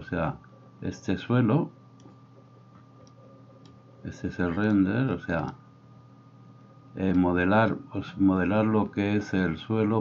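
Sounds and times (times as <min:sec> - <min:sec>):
faint computer mouse clicks: 0:02.0 - 0:02.2, 0:02.8 - 0:03.8.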